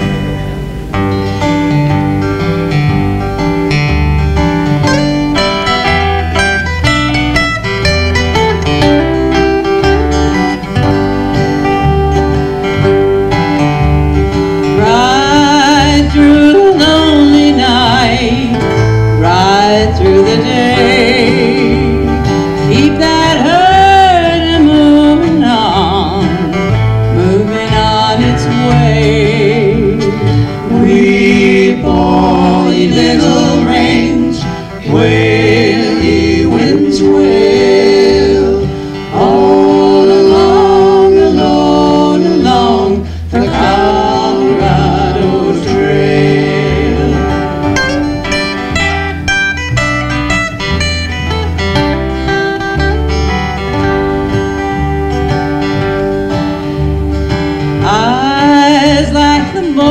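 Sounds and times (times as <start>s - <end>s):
acoustic guitars strumming: 0.0s - 59.9s
voices singing: 14.8s - 18.6s, 19.2s - 26.5s, 27.2s - 47.8s.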